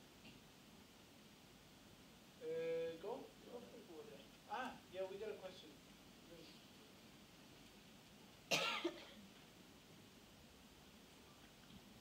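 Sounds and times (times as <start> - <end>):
person coughing: 8.5 - 9.2.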